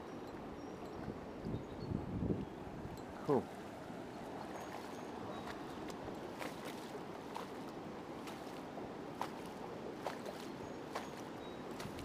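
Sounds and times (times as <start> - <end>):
river current over shallows: 0.0 - 12.0.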